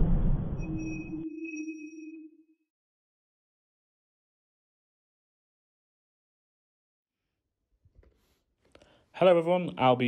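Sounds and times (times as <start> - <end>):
electronic ping: 0.5 - 2.5.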